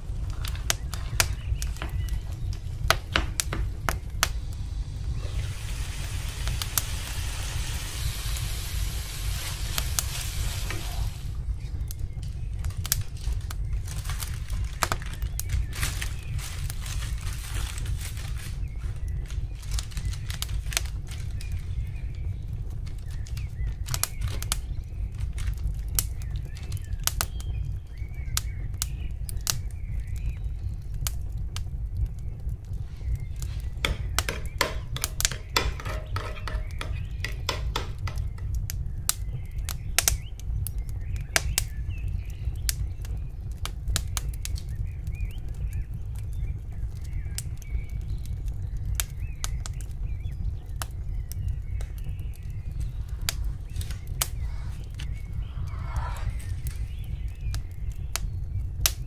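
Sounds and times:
low hum: 0.0s - 13.4s.

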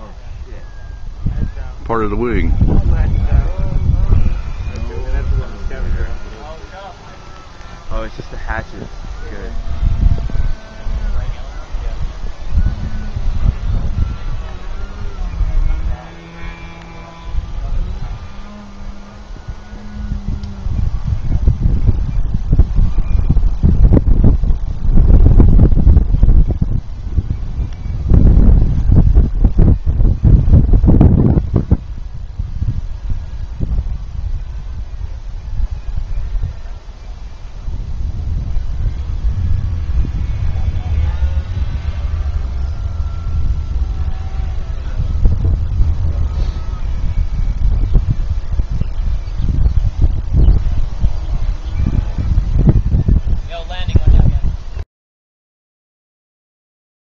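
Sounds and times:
wind buffeting microphone: 0.0s - 54.8s.

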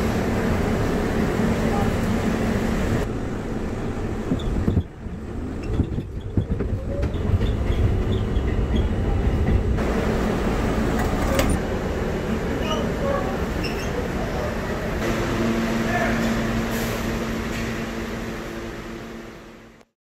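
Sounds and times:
subway train rumbling on rails: 0.0s - 19.9s.

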